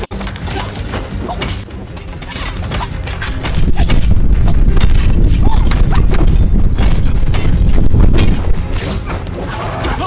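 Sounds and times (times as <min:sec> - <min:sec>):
deep rumble: 0:03.2 - 0:08.9.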